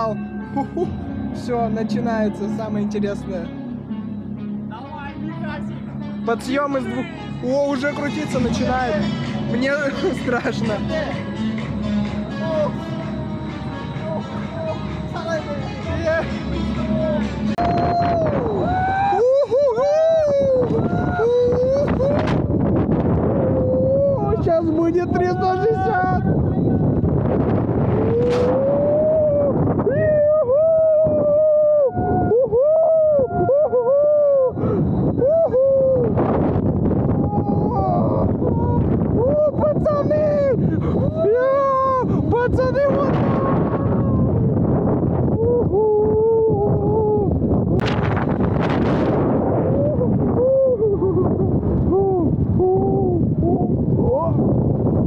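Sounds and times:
wind buffeting microphone: 7.4 - 55.0
people screaming on a ride: 17.6 - 22.4, 28.0 - 36.3, 37.2 - 47.3.

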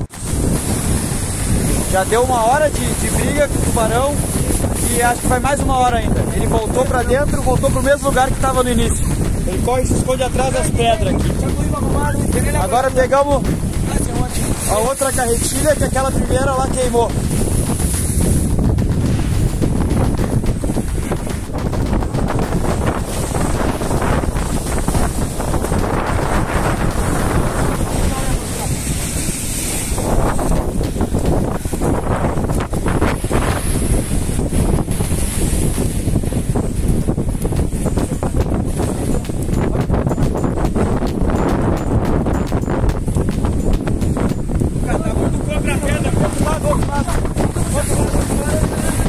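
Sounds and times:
sea surf breaking: 0.0 - 49.0
wind buffeting microphone: 0.0 - 49.0.

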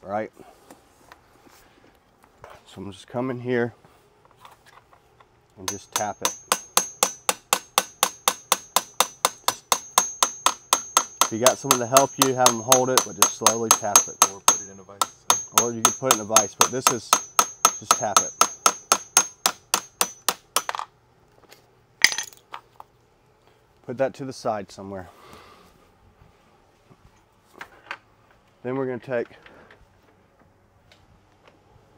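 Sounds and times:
ringing metal clink: 5.7 - 20.4
hammer tapping metal punch: 5.7 - 20.8.

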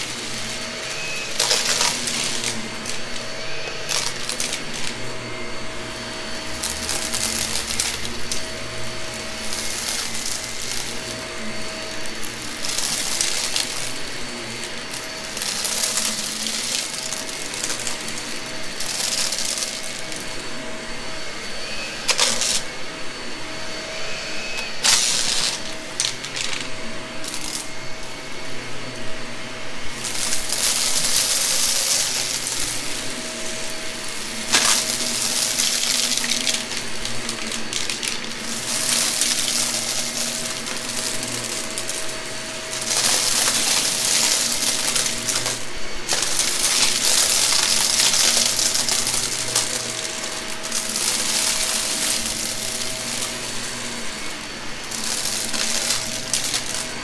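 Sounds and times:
debris rattling into vacuum: 0.0 - 20.4, 22.0 - 22.7, 24.5 - 28.8, 29.9 - 57.0
vacuum cleaner running: 0.0 - 57.0.

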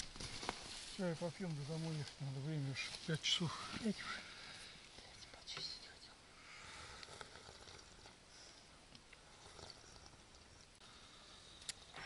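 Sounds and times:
small rustles: 0.0 - 6.1.

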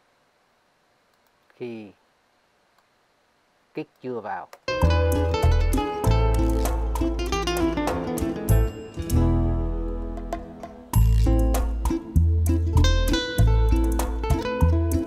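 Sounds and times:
held bass notes: 4.7 - 15.0
plucked guitar: 4.7 - 15.0.

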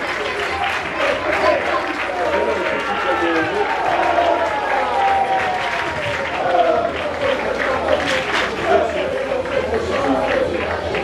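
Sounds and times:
crowd clapping: 0.0 - 11.0.

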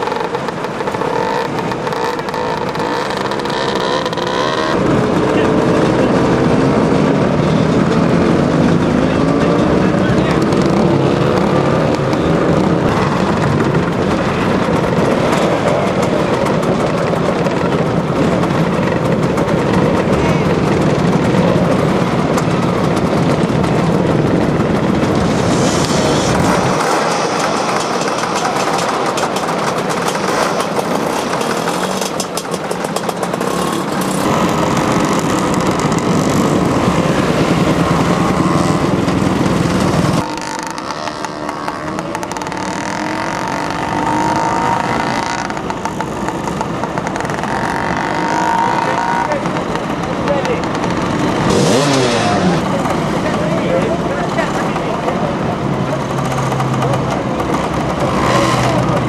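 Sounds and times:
scooter engines revving: 0.0 - 59.0.

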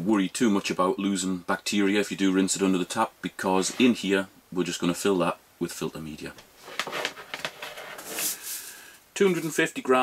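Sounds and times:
gravel rustling in mesh bag: 6.6 - 9.6.

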